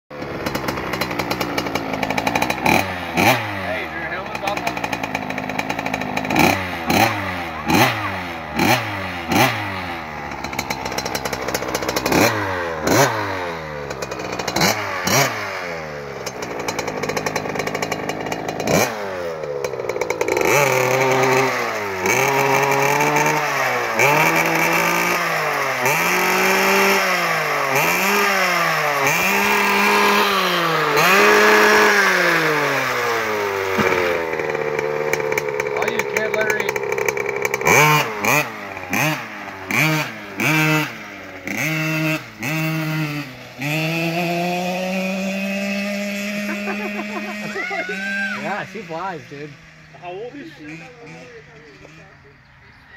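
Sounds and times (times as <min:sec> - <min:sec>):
small dirt bike engine revving: 0:00.1 - 0:52.9.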